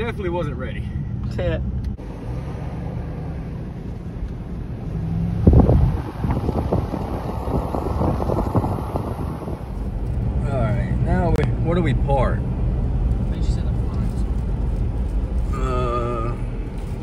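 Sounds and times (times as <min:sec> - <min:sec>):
car engine and road noise: 0:00.0 - 0:17.0
wind buffeting microphone: 0:04.6 - 0:11.4.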